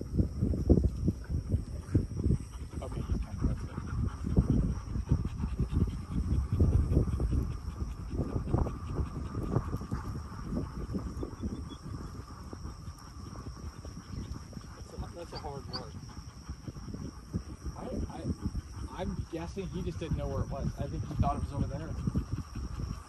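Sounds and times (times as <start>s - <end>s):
dog panting: 0.4s - 23.0s.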